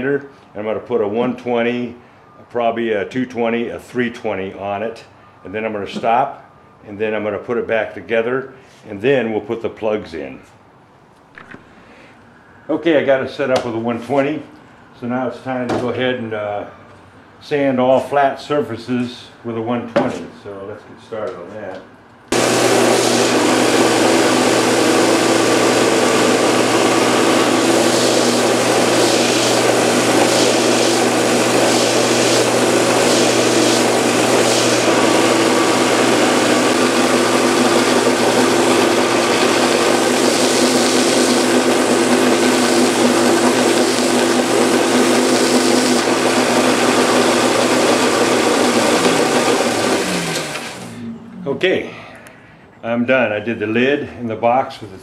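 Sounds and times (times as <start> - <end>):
belt sander running: 22.3 - 51.0
workpiece against sanding belt: 22.3 - 51.0.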